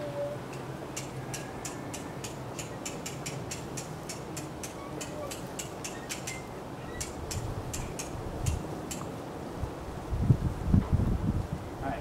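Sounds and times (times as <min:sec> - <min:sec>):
wind blowing across microphone: 0:00.0 - 0:12.0
low rumbling wind gust: 0:06.5 - 0:12.0.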